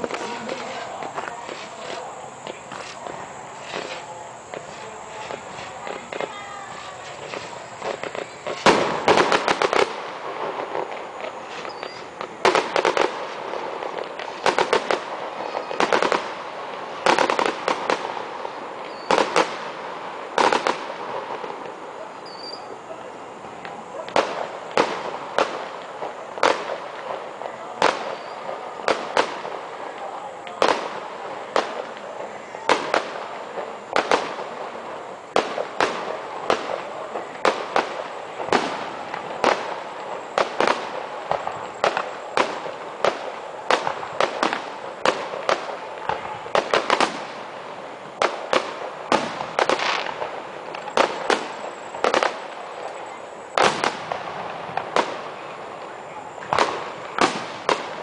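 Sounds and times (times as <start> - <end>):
fireworks shells bursting: 0.0 - 22.7, 30.6 - 55.6.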